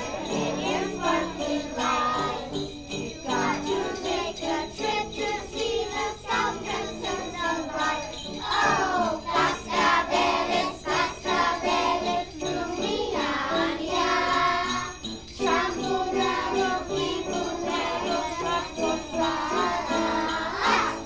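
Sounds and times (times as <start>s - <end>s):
jingle bells shaking: 0.0s - 21.0s
young children singing: 0.0s - 21.0s.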